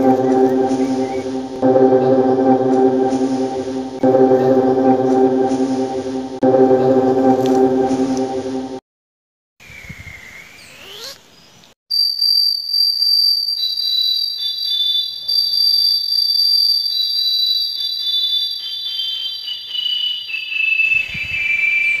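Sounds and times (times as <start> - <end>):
chord of high whining tones: 0.0 - 8.8
swooping electronic tone: 0.0 - 8.8.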